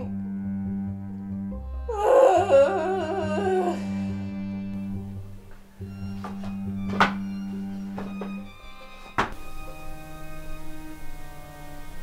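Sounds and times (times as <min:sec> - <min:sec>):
wavering howl-like cry: 0:01.9 - 0:04.2.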